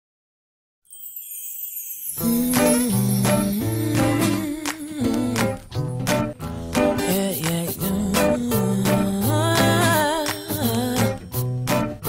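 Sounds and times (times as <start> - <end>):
high shimmering chime-like tone: 0.9 - 4.7
background music: 2.2 - 12.0.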